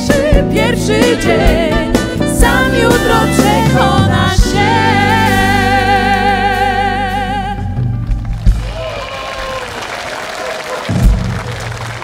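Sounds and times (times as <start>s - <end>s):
audience applauding: 8.2s - 12.0s.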